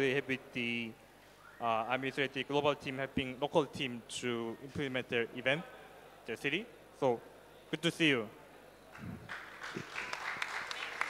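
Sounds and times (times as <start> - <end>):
audience clapping: 8.9 - 11.0.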